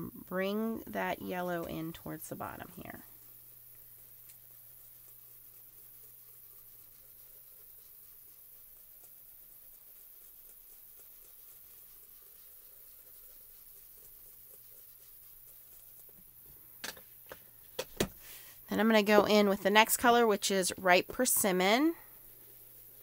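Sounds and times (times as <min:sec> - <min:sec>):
foam tool dabbing on paper: 0:00.9 - 0:23.0.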